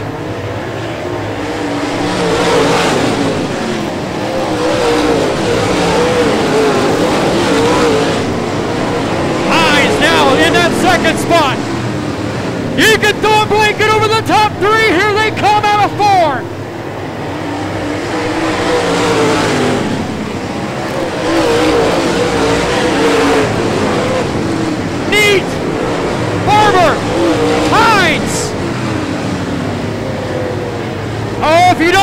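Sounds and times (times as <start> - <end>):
race car engines droning: 0.0 - 32.0.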